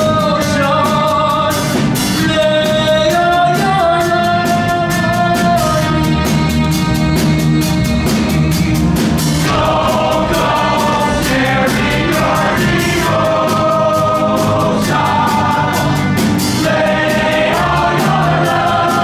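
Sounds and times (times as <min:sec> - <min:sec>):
live pit band: 0:00.0 - 0:19.0
chorus singing: 0:02.3 - 0:19.0.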